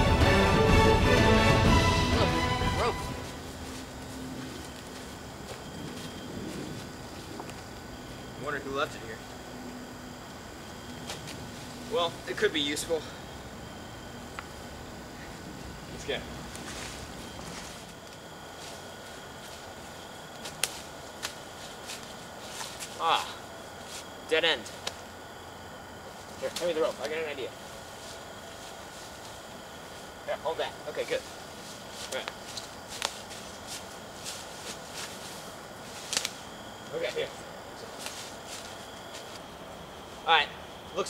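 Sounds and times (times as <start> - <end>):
steady hiss: 0.0 - 41.0
footsteps crunching dry leaves: 2.8 - 7.7, 16.0 - 24.8, 26.1 - 30.2, 30.9 - 36.6, 37.8 - 39.5
twigs snapping: 20.3 - 23.0, 24.0 - 25.0, 32.0 - 35.3, 35.9 - 36.5.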